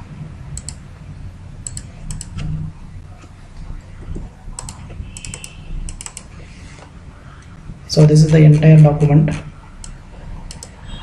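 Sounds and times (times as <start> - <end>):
low steady hum: 0.0 - 11.0
computer input device clicks: 0.6 - 0.8, 1.6 - 2.5, 4.6 - 6.3, 9.8 - 10.8.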